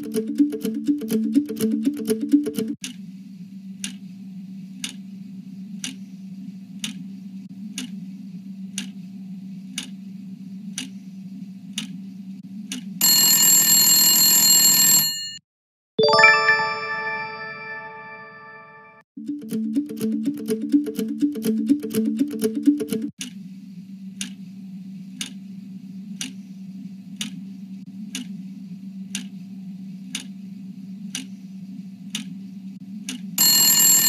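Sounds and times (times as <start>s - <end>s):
timer ticking: 0.0s - 2.8s, 19.2s - 23.2s
bright chime: 16.0s - 19.0s.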